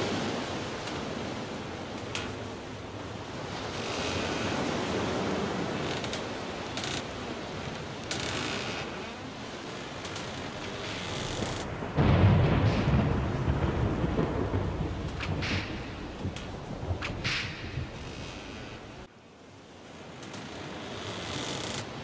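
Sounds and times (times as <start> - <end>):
steady rushing noise: 0.0 - 19.1.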